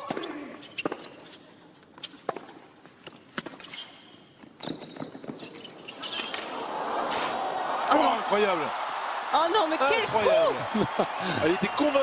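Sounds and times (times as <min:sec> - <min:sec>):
shoe squeaks: 0:00.2 - 0:06.5
crowd noise: 0:06.4 - 0:12.0.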